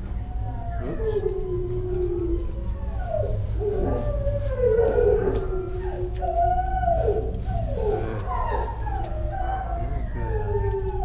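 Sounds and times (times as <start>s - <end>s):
dogs howling: 0.0s - 11.0s
steady low hum: 0.0s - 11.0s.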